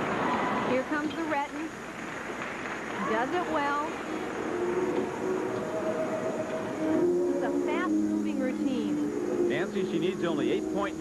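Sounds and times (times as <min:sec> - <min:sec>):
crowd cheering: 0:00.0 - 0:07.3.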